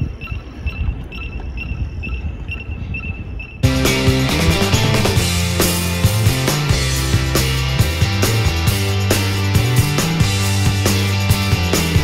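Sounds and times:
loud rock music: 3.6 - 12.0.

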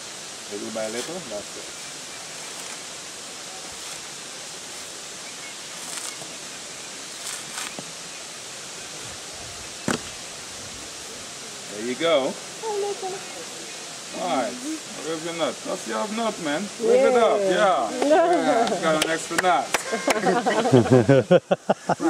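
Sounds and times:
running water: 0.0 - 22.0
coconut husk fibres tearing: 5.7 - 6.3, 7.1 - 7.9.

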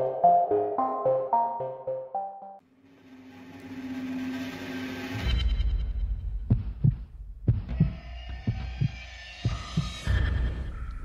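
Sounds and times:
heartbeat-like thumps: 6.0 - 10.8.

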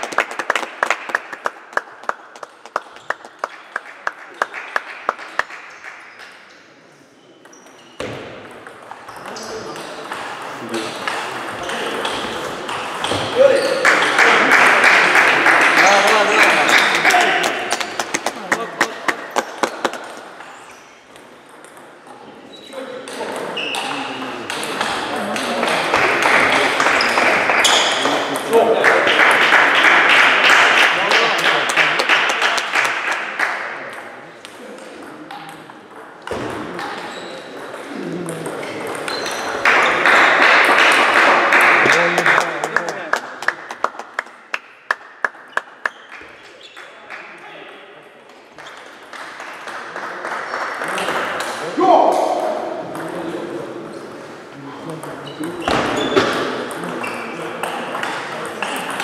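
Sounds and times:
voices in a large hall: 0.0 - 59.0
table tennis ball hits: 7.4 - 14.1, 23.1 - 28.5, 35.0 - 42.1.

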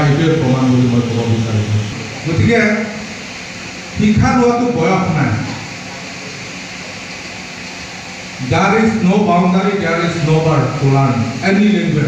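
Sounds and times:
room noise hiss: 0.0 - 12.0.

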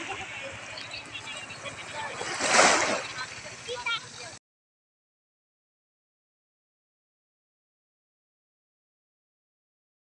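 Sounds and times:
wave washing onto sand: 2.0 - 3.4.

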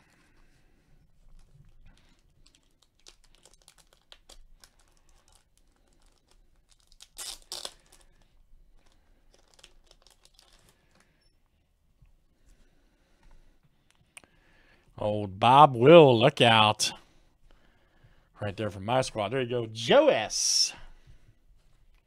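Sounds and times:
plastic wrapper crinkling: 1.3 - 11.0
plastic wrapper tearing: 2.0 - 8.2, 8.8 - 10.8.

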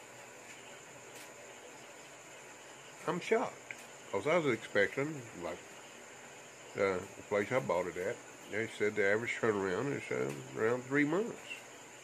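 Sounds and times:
background hiss: 0.0 - 12.0
insects chirring: 0.0 - 12.0.

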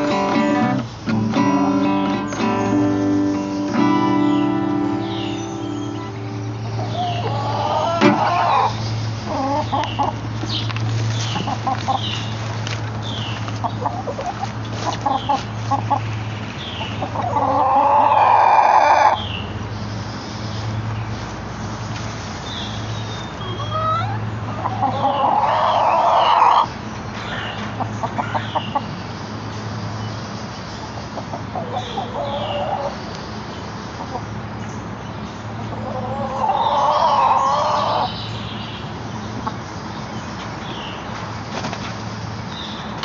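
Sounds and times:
chickens clucking quickly: 6.6 - 19.2, 23.4 - 29.0, 30.8 - 33.0, 35.4 - 38.2
chicken long loud calls: 6.7 - 10.2, 17.0 - 19.2, 23.5 - 26.7, 31.5 - 33.0, 35.7 - 38.1.

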